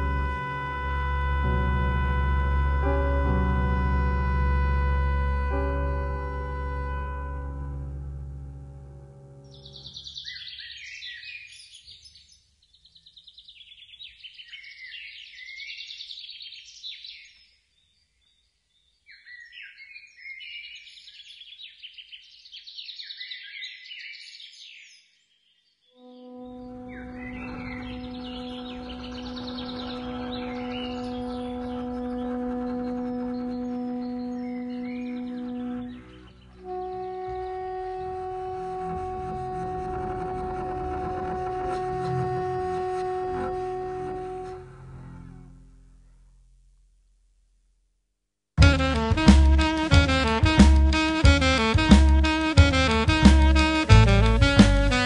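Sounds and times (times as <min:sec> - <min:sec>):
high chirping twittering sounds: 0:26.8 - 0:32.8.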